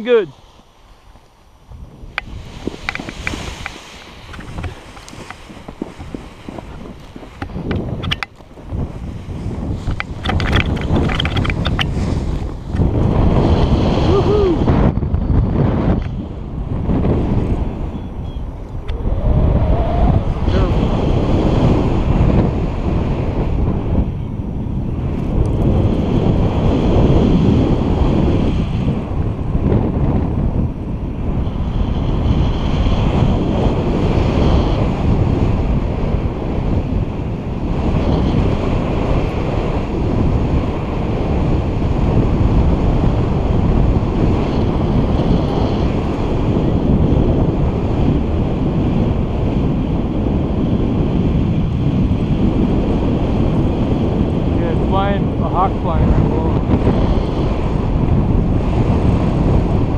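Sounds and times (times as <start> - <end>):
wind rumbling over microphone: 0.0 - 59.9.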